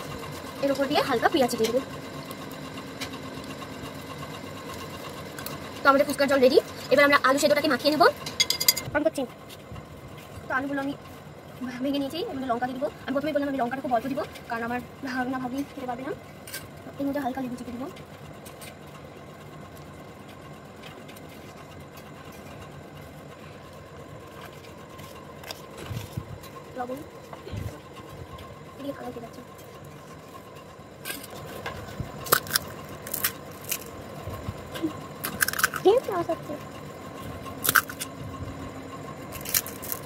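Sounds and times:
low background hum: 0:00.0 - 0:40.0
utensils tapping steel bowl: 0:08.3 - 0:08.9.

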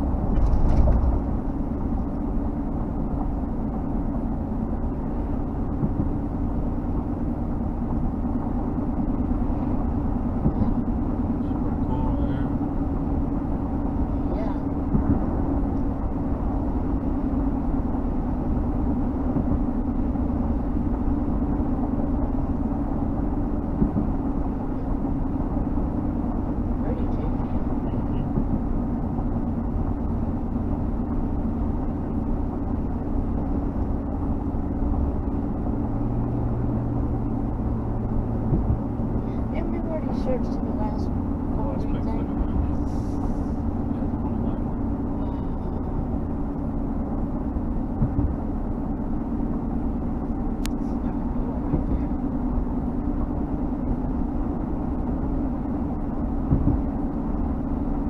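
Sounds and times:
engine hum: 0:00.0 - 0:58.0
low hum: 0:00.0 - 0:58.0.

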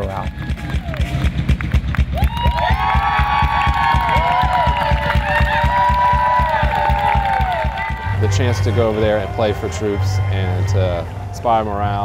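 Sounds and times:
drums pounding rapid beats: 0:00.0 - 0:09.9
faint crowd cheering: 0:00.0 - 0:12.0
held notes bending in pitch: 0:03.9 - 0:12.0.

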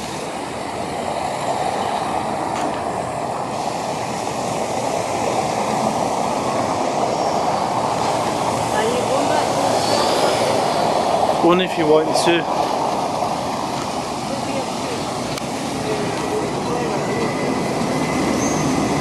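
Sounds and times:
fountain water splashing: 0:03.4 - 0:07.0, 0:08.0 - 0:17.3.

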